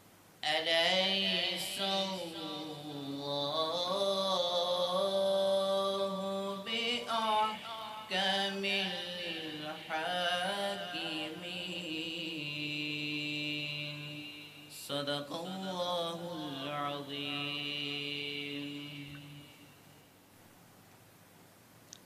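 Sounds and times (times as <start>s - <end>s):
man reciting melodically: 0.4s - 20.1s.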